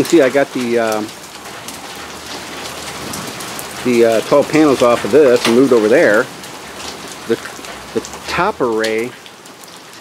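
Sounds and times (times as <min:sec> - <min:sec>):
rain and hail falling: 0:00.0 - 0:10.0.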